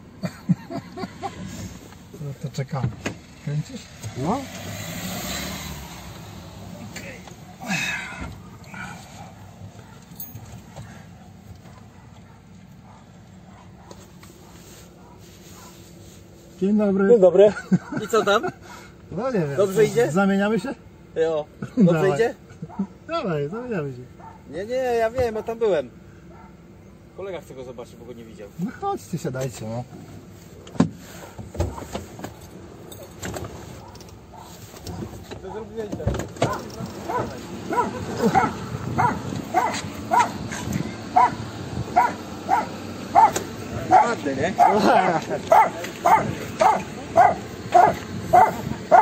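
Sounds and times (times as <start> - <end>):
car engine idling: 5.6 - 49.0.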